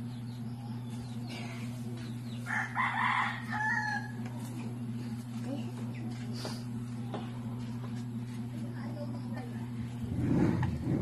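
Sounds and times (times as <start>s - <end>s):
steady low hum: 0.0s - 11.0s
rooster crowing: 2.5s - 4.2s.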